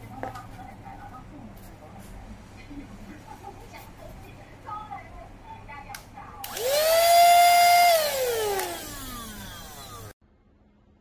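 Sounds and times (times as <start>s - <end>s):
handheld vacuum motor whine: 6.4s - 10.2s.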